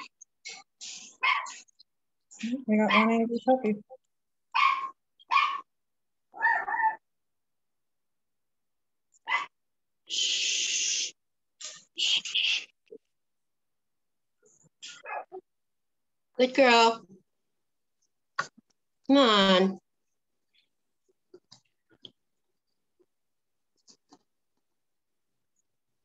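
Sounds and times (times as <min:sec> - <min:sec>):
dog barking: 0:01.2 - 0:01.6, 0:04.5 - 0:05.7, 0:09.2 - 0:09.6, 0:14.9 - 0:15.4
hiss: 0:10.1 - 0:11.1.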